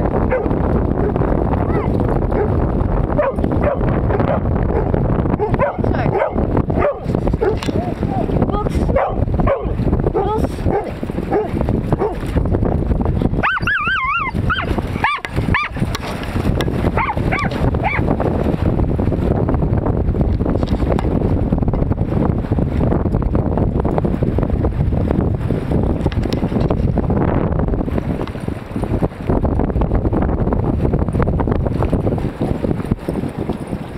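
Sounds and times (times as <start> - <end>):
wind rumble on microphone: 0.0 - 33.9
dogs yipping and barking: 0.3 - 2.6, 3.2 - 8.0, 8.9 - 12.2, 13.4 - 16.0, 16.9 - 18.1
dog high wavering whine: 13.4 - 15.8.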